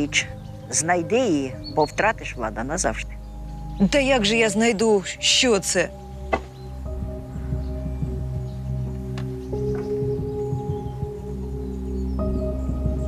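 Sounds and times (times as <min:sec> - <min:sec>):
low sustained drone: 0:00.0 - 0:13.0.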